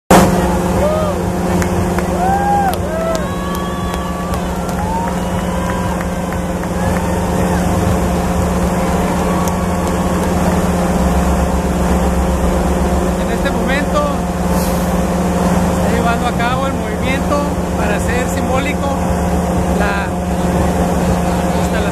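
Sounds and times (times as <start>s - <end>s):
excavator diesel engine humming: 0.1s - 21.9s
voices talking: 15.4s - 21.9s.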